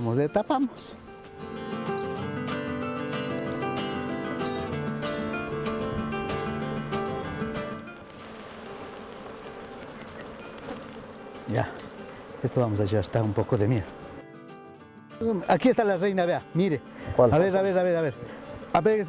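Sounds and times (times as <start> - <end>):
honeybees buzzing: 0.0 - 19.0
plucked melodic music: 1.1 - 8.1.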